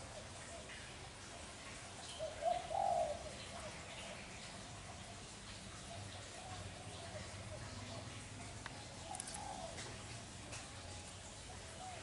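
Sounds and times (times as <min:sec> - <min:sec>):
dove cooing: 0:02.2 - 0:04.1, 0:05.7 - 0:10.4, 0:11.5 - 0:12.0.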